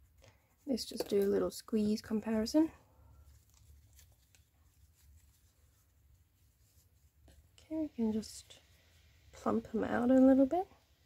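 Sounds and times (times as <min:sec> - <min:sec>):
soft rustles of squeezed toys: 0:00.0 - 0:09.5
low room hum: 0:00.0 - 0:11.0.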